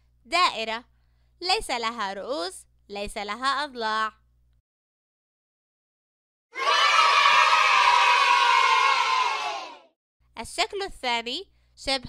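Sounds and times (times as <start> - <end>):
children cheering: 6.6 - 9.9.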